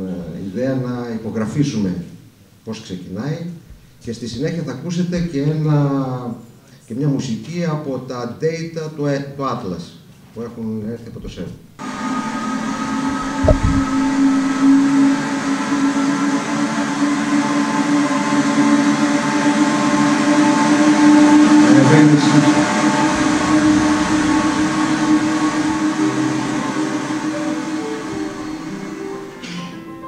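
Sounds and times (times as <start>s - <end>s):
electronic drone of held tones: 11.8s - 15.6s
short electronic notes: 13.0s - 15.1s
low thump: 13.2s - 14.8s
hiss: 22.1s - 29.8s.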